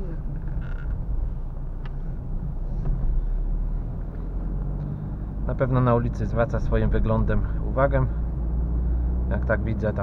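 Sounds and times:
car engine drone: 0:00.0 - 0:10.0
road rumble: 0:00.0 - 0:10.0.

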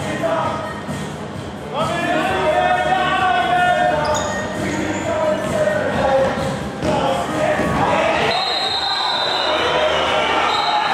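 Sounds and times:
spectators talking and calling out: 0:06.9 - 0:10.9.

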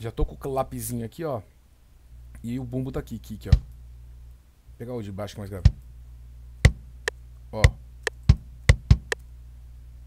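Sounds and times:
steady low hum: 0:00.0 - 0:10.0
kick drum hits: 0:06.6 - 0:06.9, 0:07.6 - 0:09.2.

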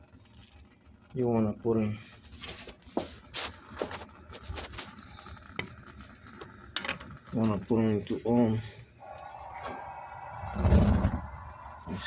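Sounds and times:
gas burner ignition whoosh: 0:00.0 - 0:12.0.

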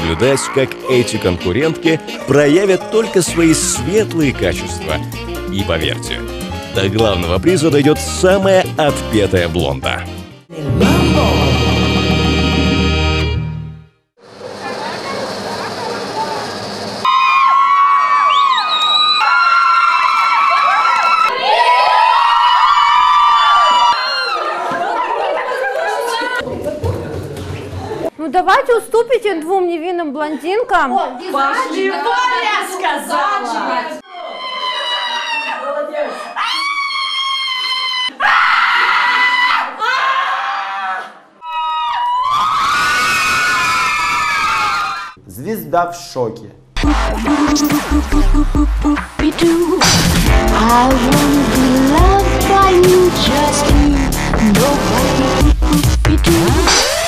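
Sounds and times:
women screaming: 0:00.0 - 0:01.0, 0:17.0 - 0:25.3, 0:34.0 - 0:45.2
crowd noise: 0:00.0 - 0:05.6, 0:14.2 - 0:28.6.

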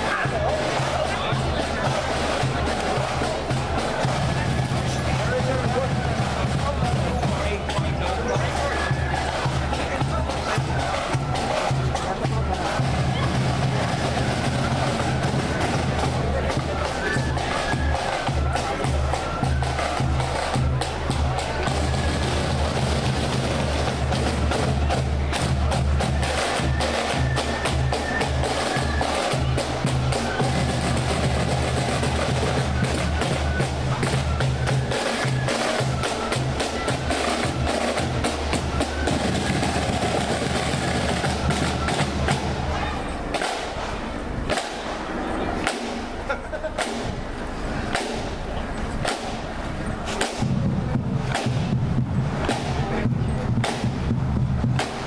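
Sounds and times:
snare drums beating and rolling: 0:00.0 - 0:55.0.

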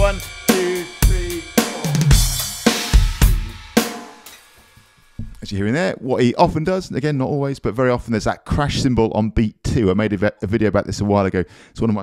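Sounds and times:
crash cymbal: 0:00.0 - 0:05.2
electronic drum kit groove: 0:00.0 - 0:05.5.

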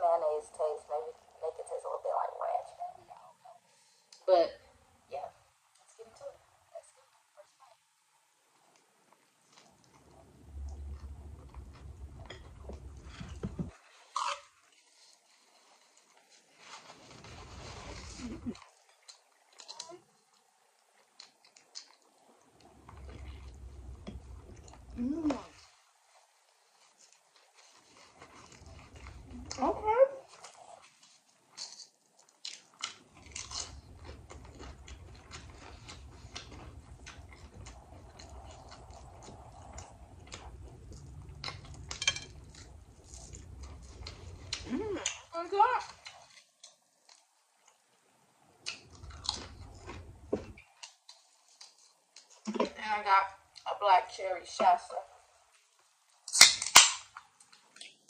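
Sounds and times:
wet chewing with mouth clicks: 0:08.5 - 0:52.7, 0:55.8 - 0:58.0
person humming mmm: 0:25.0 - 0:25.5, 0:44.6 - 0:45.1.

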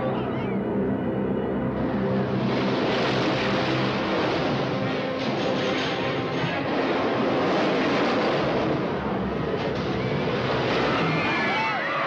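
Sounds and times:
roller coaster rushing roar: 0:01.7 - 0:12.0.

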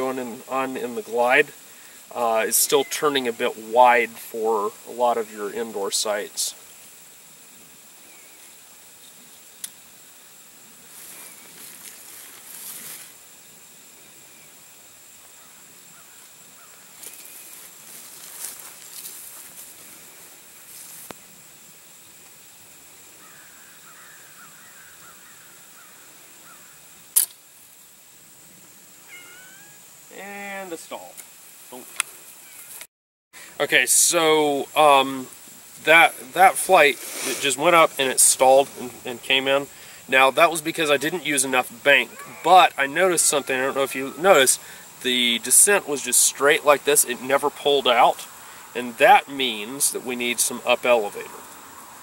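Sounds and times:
whining voice-like call: 0:02.4 - 0:03.4, 0:29.1 - 0:29.8, 0:41.9 - 0:44.6
faint rustling: 0:10.8 - 0:13.2, 0:16.9 - 0:21.3, 0:35.7 - 0:39.2
sharp clicks: 0:27.1 - 0:27.4.

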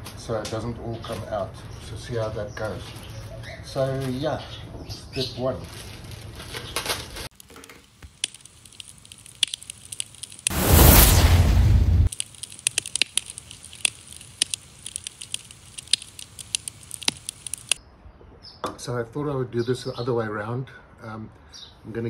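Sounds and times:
sharp crackles and clicks: 0:06.8 - 0:17.8
loud rushing burst: 0:10.5 - 0:12.2.

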